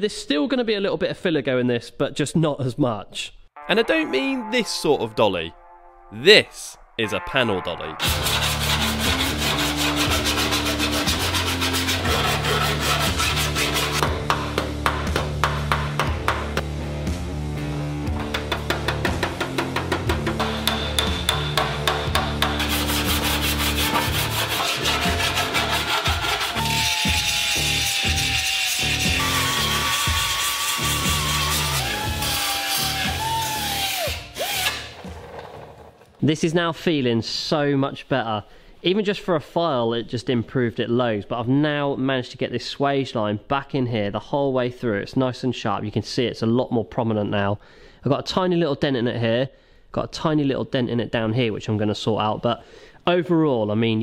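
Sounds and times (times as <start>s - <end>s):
background music with bass: 3.6s - 35.1s
hand file rasping on metal: 8.0s - 14.4s, 18.7s - 34.8s.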